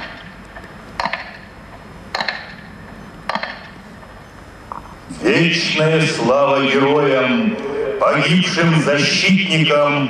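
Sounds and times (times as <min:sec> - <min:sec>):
metronome ticks over loudspeakers: 0:02.1 - 0:02.6, 0:03.3 - 0:03.7.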